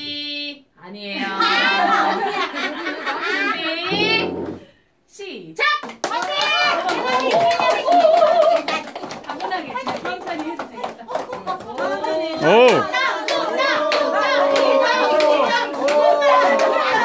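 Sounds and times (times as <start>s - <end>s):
people cheering: 6.1s - 8.9s, 11.8s - 17.0s
loud shout: 12.2s - 17.0s.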